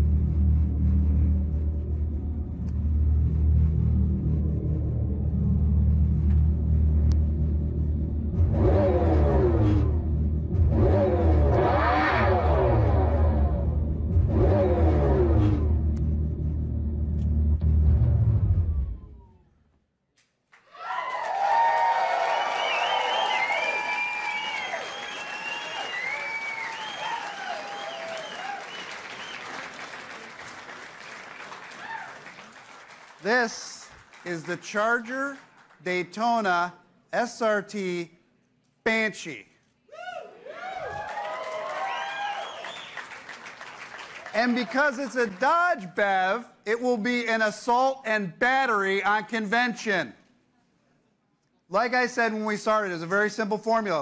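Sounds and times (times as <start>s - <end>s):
synthesized exhaust rumble revving: 0.0s - 19.5s
crowd cheering and applauding: 20.5s - 35.9s, 40.0s - 45.8s.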